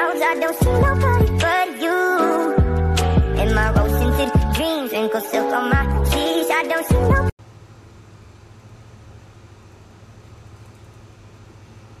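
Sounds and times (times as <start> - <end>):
song with singing: 0.0 - 7.3.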